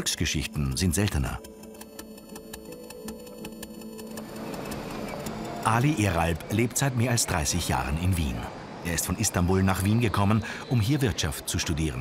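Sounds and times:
low musical drone: 0:00.0 - 0:12.0
laptop keyboard typing: 0:00.6 - 0:06.7
street ambience hiss: 0:04.2 - 0:12.0.

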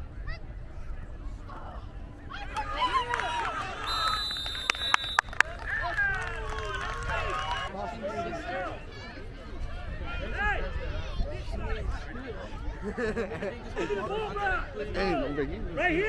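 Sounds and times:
spectators shouting and cheering: 0:02.2 - 0:10.9
referee whistle: 0:03.8 - 0:05.4.

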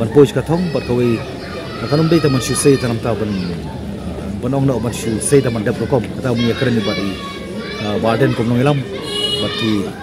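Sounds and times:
man talking: 0:01.8 - 0:03.6, 0:04.3 - 0:07.2, 0:07.8 - 0:10.0.

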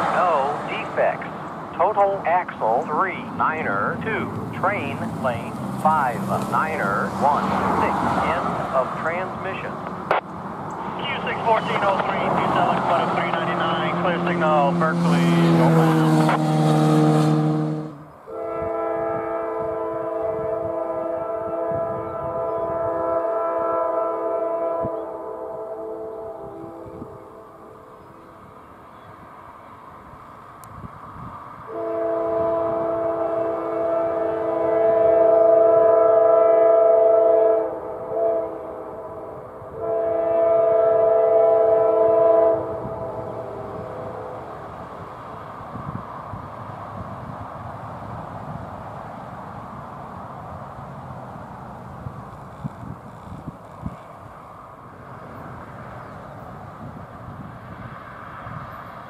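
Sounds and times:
train rumbling: 0:00.0 - 0:59.0
locomotive air horn blasts: 0:12.8 - 0:27.8, 0:31.7 - 0:44.4.

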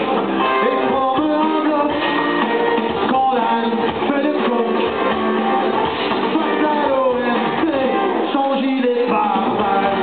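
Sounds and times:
live band with electric guitar: 0:00.0 - 0:10.0.

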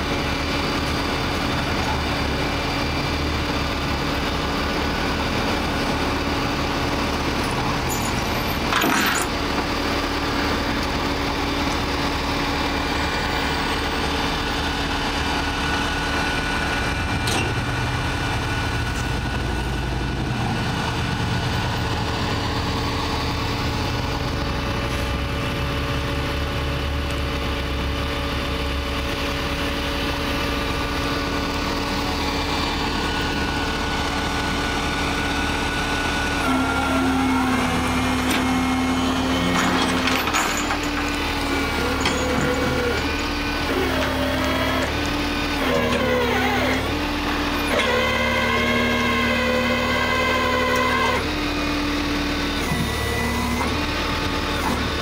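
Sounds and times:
truck engine idling: 0:00.0 - 0:08.7, 0:09.3 - 0:55.0.

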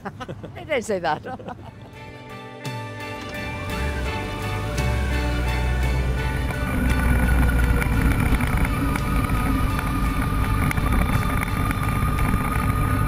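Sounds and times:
motorcycle engine running: 0:03.2 - 0:13.0.

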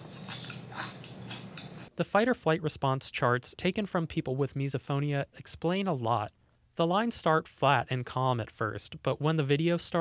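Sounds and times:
person crunching potato chips: 0:00.0 - 0:01.9.

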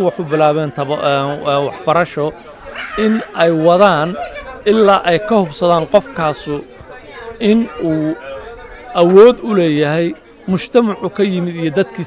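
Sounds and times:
background chatter: 0:00.0 - 0:12.0.

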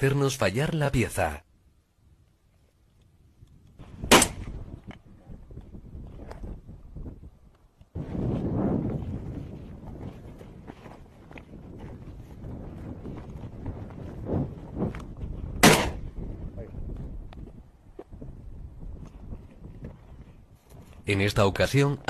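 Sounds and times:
shotgun shot: 0:04.0 - 0:04.6, 0:15.6 - 0:16.0
footsteps through dry scrub: 0:08.0 - 0:15.5, 0:18.9 - 0:21.2.

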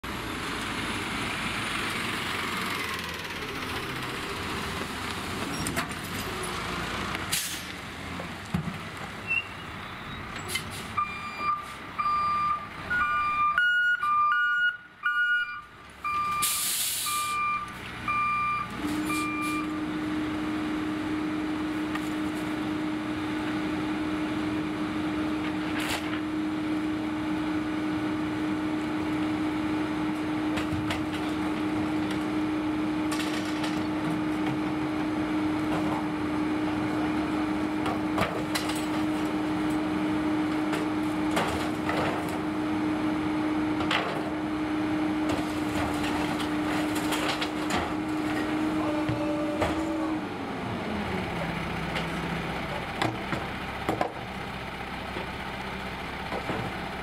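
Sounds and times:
garbage truck engine running: 0:00.0 - 0:10.7, 0:15.8 - 0:57.0
air brakes hissing: 0:07.3 - 0:07.7, 0:16.4 - 0:17.4
reversing alarm beeping: 0:11.0 - 0:19.8.

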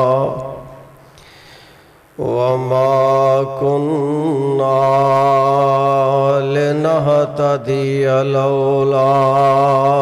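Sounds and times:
man chanting: 0:00.0 - 0:01.0, 0:02.2 - 0:10.0.

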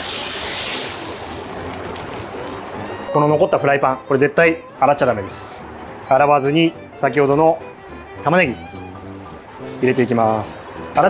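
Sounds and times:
steak sizzling: 0:00.0 - 0:03.1, 0:08.7 - 0:11.0.

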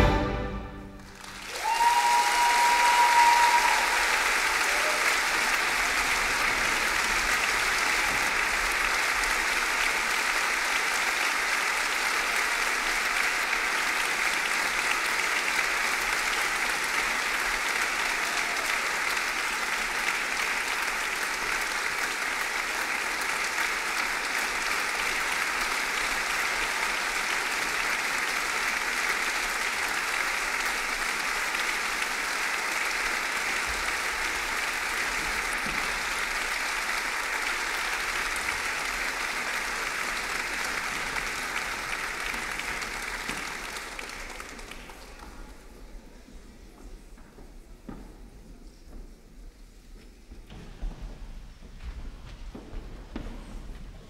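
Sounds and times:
audience applauding: 0:00.0 - 0:46.0
held high cheer: 0:01.0 - 0:06.8, 0:17.7 - 0:19.5.

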